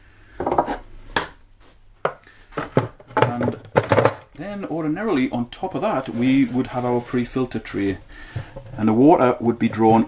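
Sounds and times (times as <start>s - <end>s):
plastic parts knocking and clattering: 2.0s - 4.4s, 8.3s - 8.9s.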